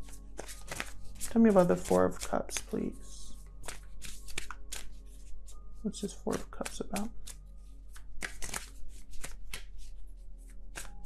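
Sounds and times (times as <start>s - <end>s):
cards being shuffled: 0.0s - 11.0s
faint background music: 0.0s - 11.0s.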